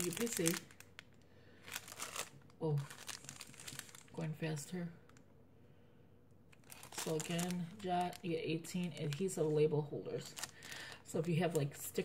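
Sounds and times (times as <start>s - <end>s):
plastic packaging crinkling: 0.0s - 5.2s, 6.5s - 12.0s.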